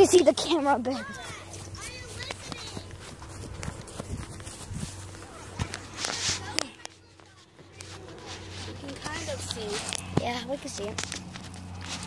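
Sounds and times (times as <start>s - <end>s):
faint voices: 0.0s - 11.0s
footsteps: 0.0s - 12.0s.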